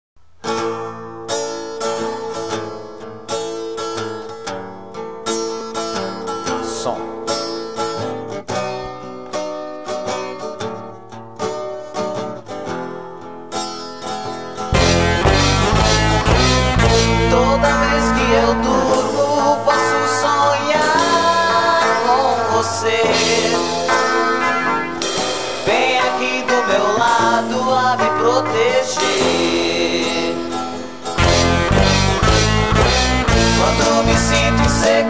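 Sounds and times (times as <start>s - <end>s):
picked guitar notes: 0.4s - 35.0s
full band with heavy bass: 14.7s - 35.0s.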